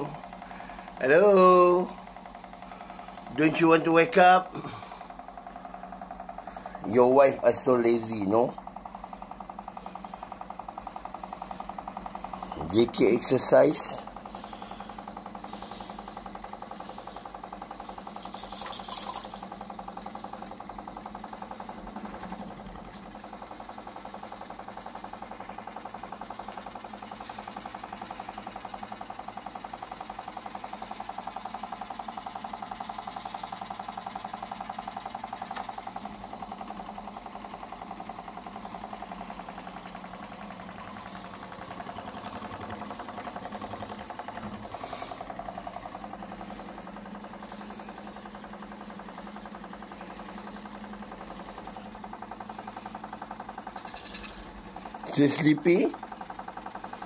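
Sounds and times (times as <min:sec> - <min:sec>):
vibration machine buzzing rattle: 0:00.0 - 0:57.0.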